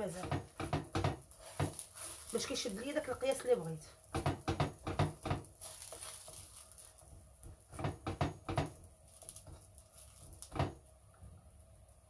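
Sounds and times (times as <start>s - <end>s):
hands slapping dough: 3.3s - 10.8s.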